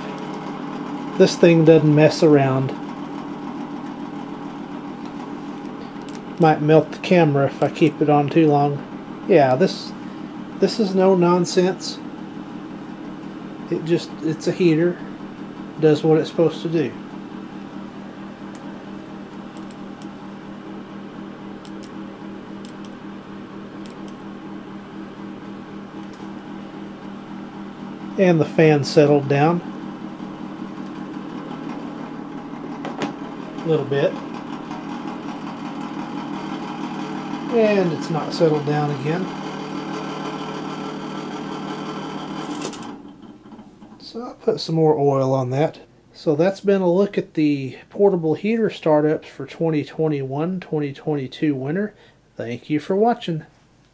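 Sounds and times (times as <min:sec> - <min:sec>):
heater fan motor humming: 0:00.0 - 0:53.9
dial clicking: 0:07.6 - 0:08.1, 0:18.5 - 0:20.2, 0:21.6 - 0:22.0, 0:22.6 - 0:23.0, 0:23.8 - 0:24.2.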